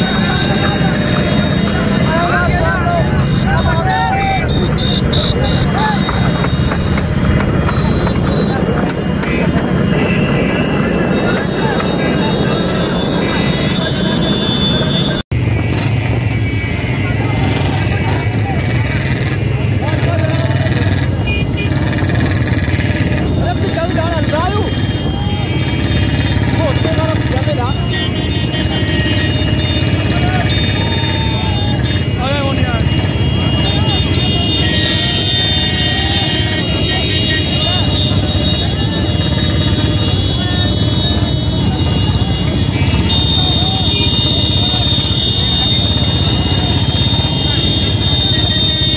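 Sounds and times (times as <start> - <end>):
indistinct shouting voices: 0.0 - 6.8, 22.6 - 48.9
motorcycle engines running: 0.0 - 48.9.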